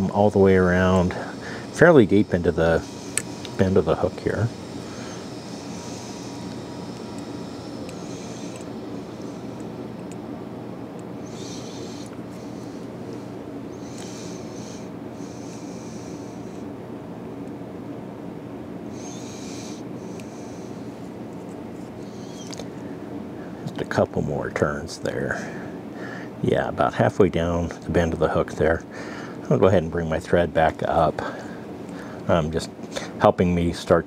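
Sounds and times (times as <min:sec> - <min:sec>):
low room hum: 0:00.0 - 0:34.0.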